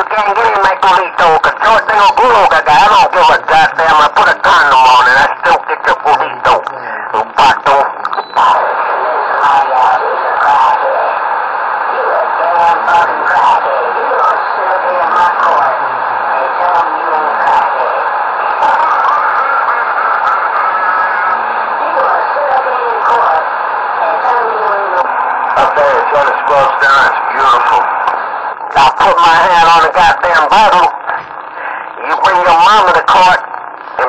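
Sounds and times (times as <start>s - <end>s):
garbled radio voices: 0.0s - 34.0s.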